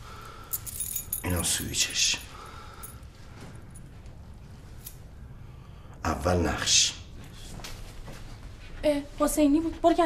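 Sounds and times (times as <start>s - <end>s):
keys jangling: 0.5s - 3.0s.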